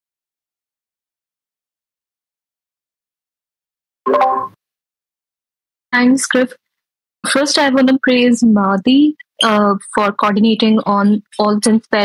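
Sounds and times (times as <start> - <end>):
electronic notification blip: 4.1 - 4.6.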